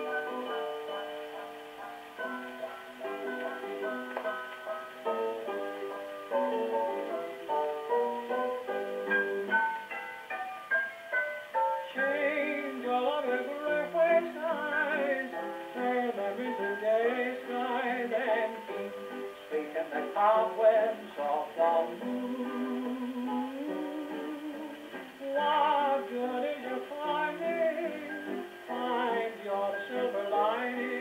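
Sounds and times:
old dance record on phonograph: 0.0 - 31.0.

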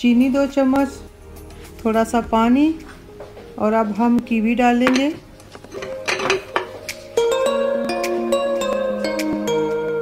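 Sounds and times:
background music: 0.0 - 10.0
clinks against glass: 5.7 - 6.7.

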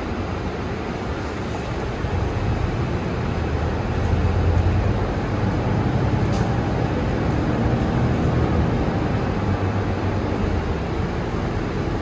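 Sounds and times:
bus engine hum: 0.0 - 12.0
road noise: 0.0 - 12.0.

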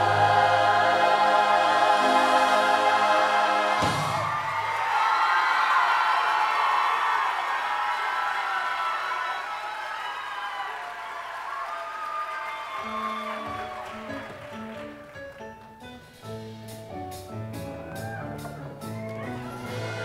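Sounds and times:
audience cheering and applauding: 1.9 - 15.8, 17.8 - 20.0
bass and keyboard notes: 13.2 - 20.0.

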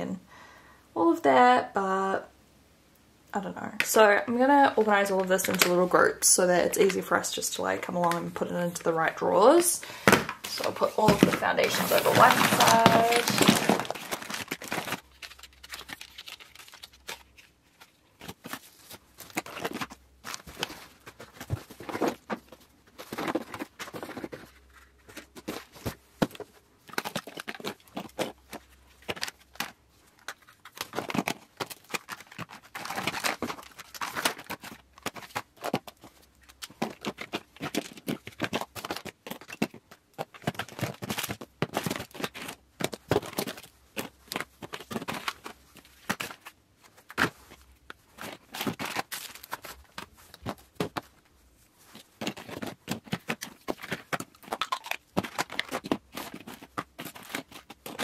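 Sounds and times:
packaging clicks and clatter: 4.8 - 5.9, 9.5 - 58.0
packaging rustling and crinkling: 9.0 - 58.0.

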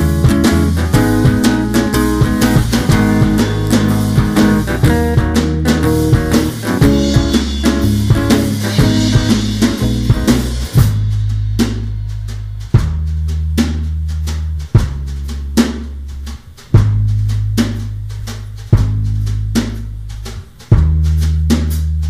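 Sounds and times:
drum kit playing a steady beat: 0.0 - 22.0
low held bass notes: 0.0 - 22.0.

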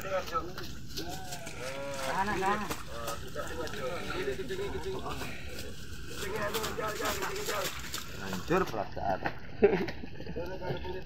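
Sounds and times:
men shouting wavering calls: 0.0 - 8.6.

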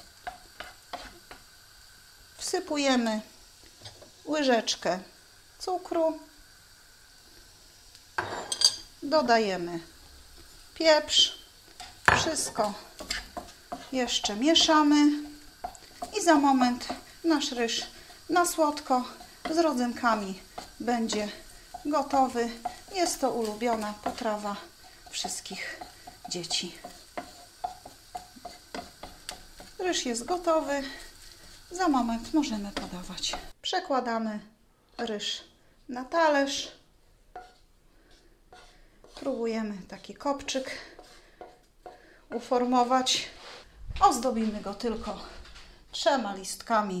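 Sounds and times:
food sizzling in pan: 0.0 - 47.0
person speaking: 44.0 - 45.4.

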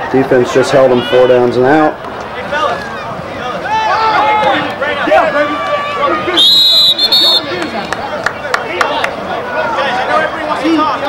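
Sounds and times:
crowd chatter: 0.0 - 11.0
referee's whistle blasts: 6.3 - 7.6.

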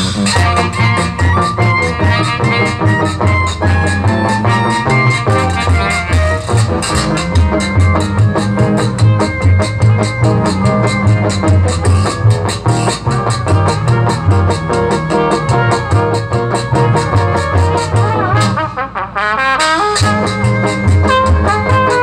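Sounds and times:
live jazz band playing: 0.0 - 22.0
wavering rising solo line: 5.9 - 17.6.

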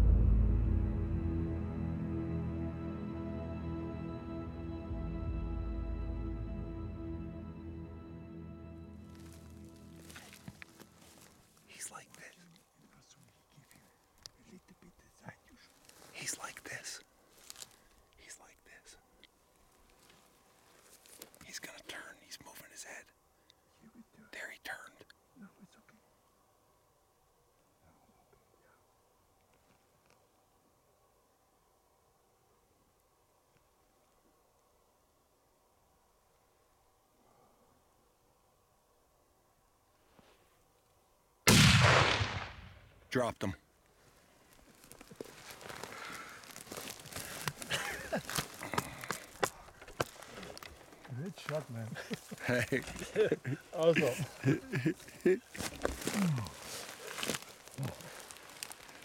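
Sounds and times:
person whispering: 11.6 - 17.1, 18.2 - 19.1, 21.4 - 23.2, 23.8 - 26.1, 56.2 - 56.7, 57.7 - 58.3
rifle shot echoing: 41.5 - 43.0.

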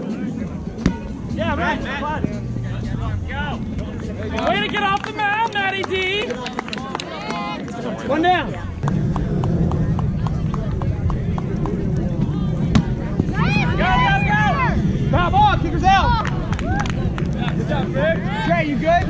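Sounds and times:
steady low rumble: 0.0 - 6.8, 7.6 - 19.0
players shouting: 11.8 - 19.0.

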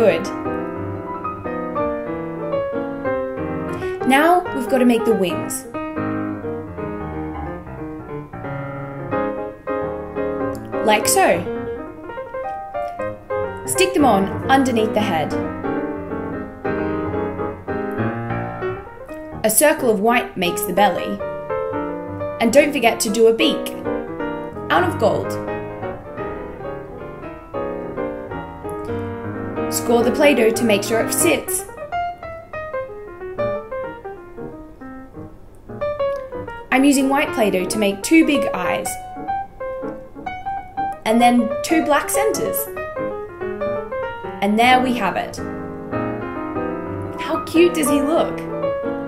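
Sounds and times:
piano notes and chords: 0.0 - 49.0.

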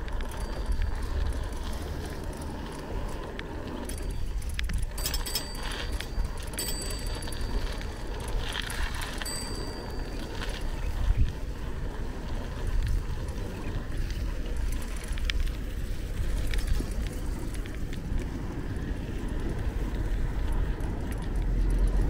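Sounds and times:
bicycle tyre road rumble: 0.0 - 22.0
wind on microphone: 3.5 - 22.0.

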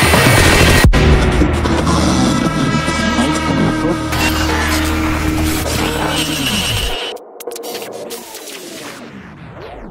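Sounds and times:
dubstep track: 0.0 - 9.0
glitchy stutters: 0.0 - 9.9.

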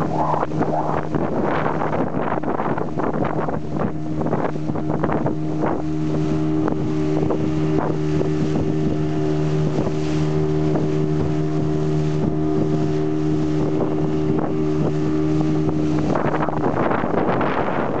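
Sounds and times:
hull slapping on waves: 0.0 - 18.0
outboard motor humming: 0.0 - 18.0
water and wind rushing: 0.0 - 18.0.

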